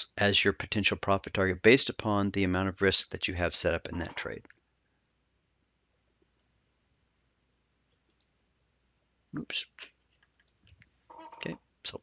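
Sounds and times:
computer mouse clicks: 0:08.0 - 0:08.3, 0:10.1 - 0:10.9.

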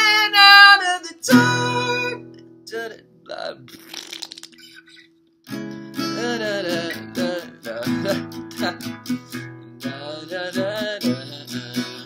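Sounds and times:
acoustic guitar chords strummed: 0:00.0 - 0:03.1, 0:05.5 - 0:12.0.

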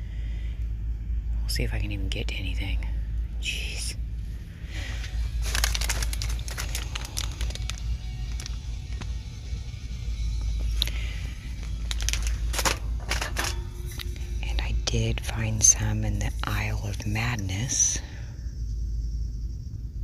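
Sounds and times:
low rumble: 0:00.0 - 0:20.0
store background music: 0:00.8 - 0:19.5
plastic packaging crinkling: 0:04.8 - 0:09.6, 0:10.6 - 0:14.4.

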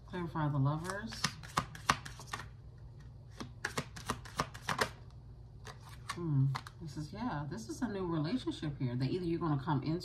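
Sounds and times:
cards being shuffled: 0:00.8 - 0:05.0, 0:05.6 - 0:06.8.

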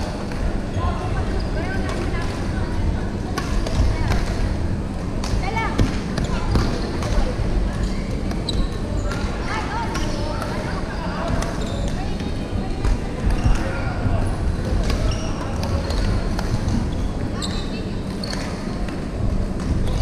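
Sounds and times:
many people's voices: 0:00.0 - 0:20.0
shoes squeaking on court floor: 0:05.9 - 0:09.3, 0:14.8 - 0:18.8.

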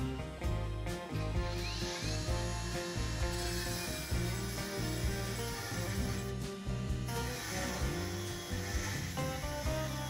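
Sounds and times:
background music: 0:00.0 - 0:10.0
angle grinder cutting steel: 0:01.1 - 0:10.0.

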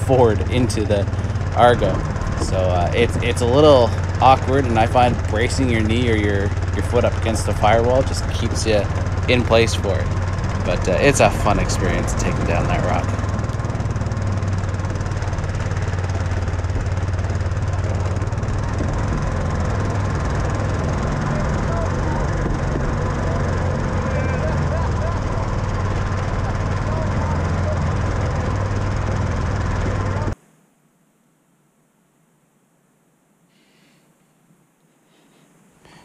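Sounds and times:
faint voices: 0:00.0 - 0:13.2, 0:20.6 - 0:29.0
vehicle engine running under load: 0:00.0 - 0:30.4.

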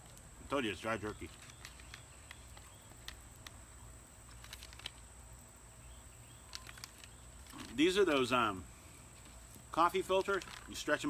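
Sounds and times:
paper pouch crinkling: 0:00.8 - 0:05.3, 0:06.3 - 0:08.6, 0:09.2 - 0:11.0.

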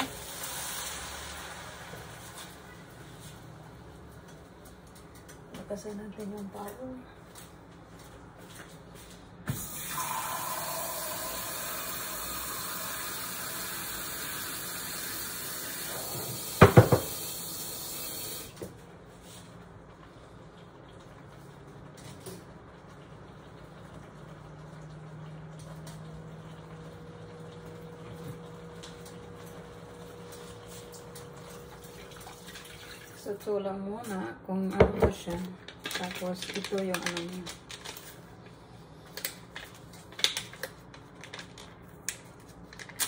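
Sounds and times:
water running from a tap: 0:00.0 - 0:02.4, 0:09.6 - 0:18.6, 0:23.0 - 0:33.4.

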